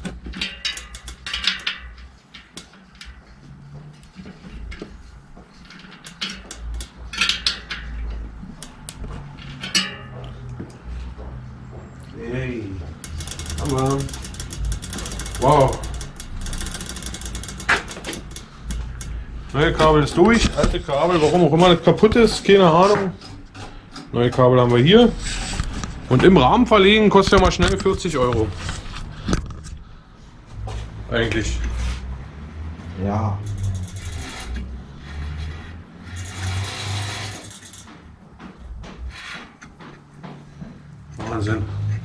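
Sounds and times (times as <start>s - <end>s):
bicycle metal clicks and rattles: 0.0s - 10.6s, 12.9s - 21.4s, 33.4s - 38.1s
fast ratchet-like ticking: 13.0s - 19.1s, 33.4s - 34.6s.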